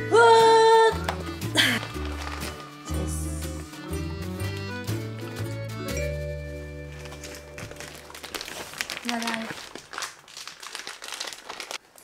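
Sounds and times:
crinkling handling noise: 1.0 - 3.0, 6.4 - 12.0
person laughing: 1.5 - 2.0.

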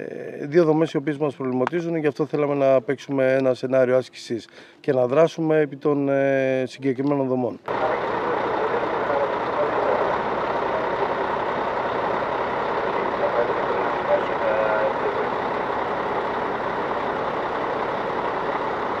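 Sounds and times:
faint voices: 7.7 - 16.1
fire engine running: 7.7 - 19.0.

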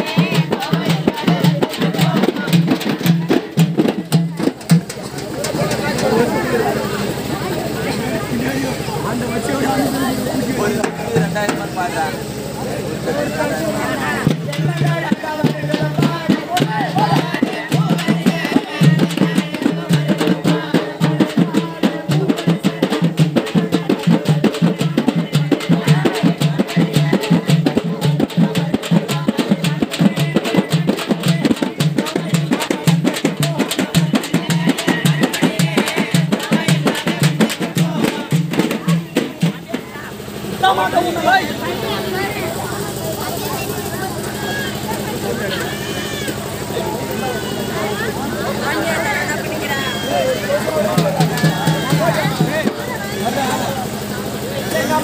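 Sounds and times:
crowd voices: 0.0 - 55.0
drums beaten with sticks: 0.0 - 55.0.

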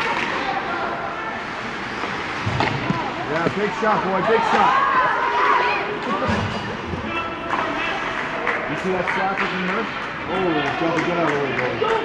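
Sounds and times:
din of ice rink: 0.0 - 12.0
spectator chatter: 0.0 - 12.0.

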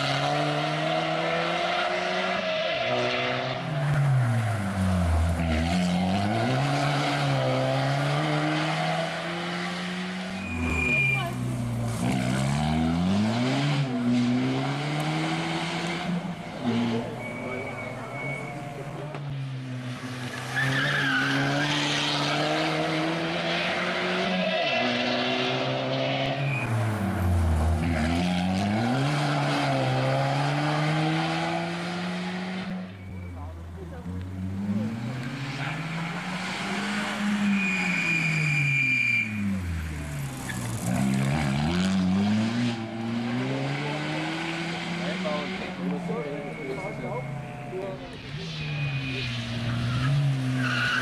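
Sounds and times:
rally car engine revving: 0.0 - 51.0.

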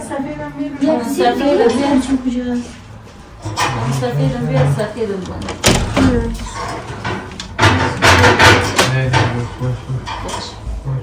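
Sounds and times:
sudden knock: 5.6 - 9.4.

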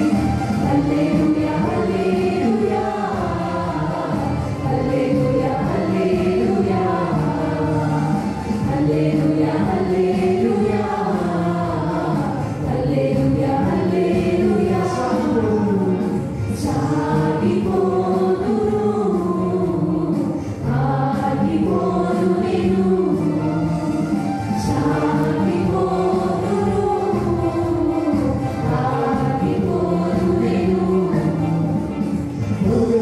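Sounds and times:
group singing through microphones: 0.0 - 33.0.

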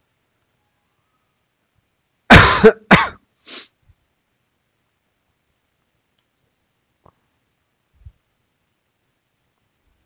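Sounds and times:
man coughing: 2.3 - 3.2.

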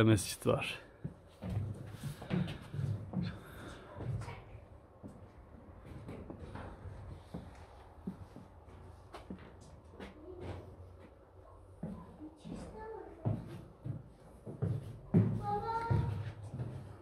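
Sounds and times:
footsteps: 0.8 - 17.0.

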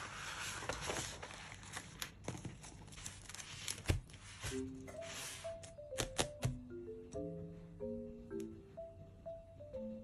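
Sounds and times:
paper rustling: 0.0 - 5.6.

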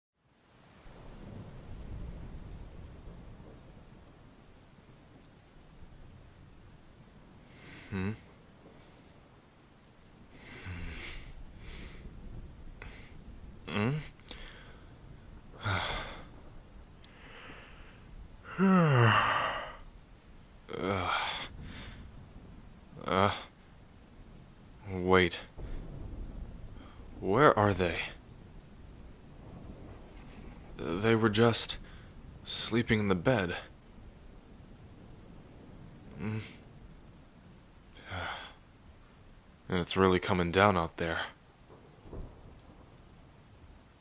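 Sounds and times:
steady rain: 0.1 - 44.0
thunder rumbling: 0.8 - 44.0
man sighing: 7.5 - 8.3, 10.4 - 12.0, 12.8 - 14.9, 15.6 - 16.4, 17.0 - 19.9, 20.7 - 22.0, 36.2 - 36.6, 38.0 - 38.6.

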